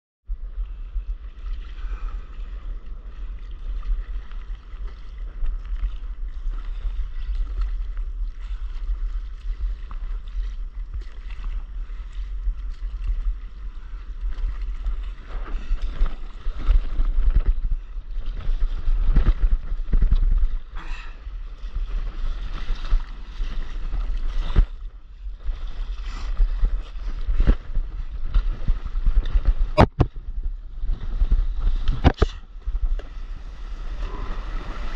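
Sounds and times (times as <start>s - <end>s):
water lapping: 0.4s - 30.0s, 30.8s - 34.9s
paddle splashing in water: 1.3s - 30.2s.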